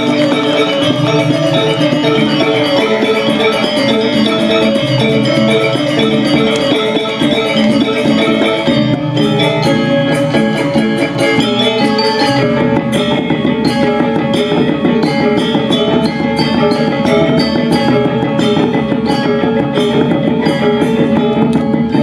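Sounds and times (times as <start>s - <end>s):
drums: 0.0s - 22.0s
metallophones struck fast: 0.0s - 22.0s.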